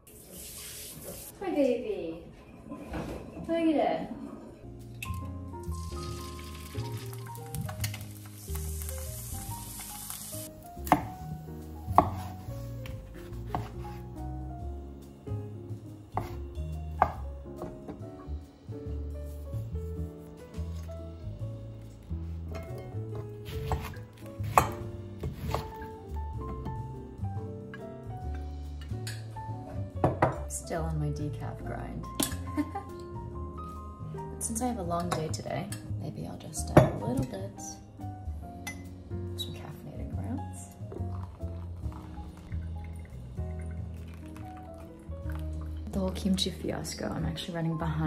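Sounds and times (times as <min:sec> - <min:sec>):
soft background music: 0:00.2 - 0:48.0
egg sizzling in frying pan: 0:05.7 - 0:10.6
knife chopping on wooden board: 0:10.8 - 0:11.2, 0:11.9 - 0:13.8, 0:16.2 - 0:16.4, 0:23.4 - 0:25.8.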